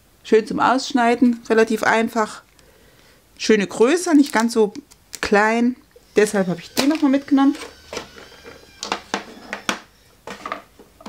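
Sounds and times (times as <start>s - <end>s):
plastic packaging crinkling: 4.0s - 5.4s, 6.6s - 10.6s.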